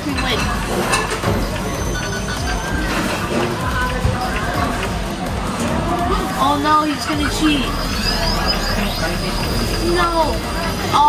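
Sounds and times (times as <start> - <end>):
restaurant background noise: 0.0 - 11.0
voices: 0.0 - 11.0.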